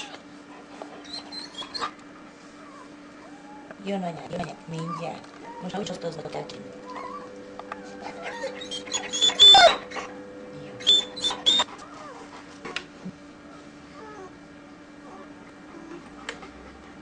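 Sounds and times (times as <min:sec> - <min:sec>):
puppies squealing: 0:00.0 - 0:00.2, 0:01.0 - 0:02.0, 0:04.7 - 0:05.8, 0:06.9 - 0:10.1, 0:10.8 - 0:12.2.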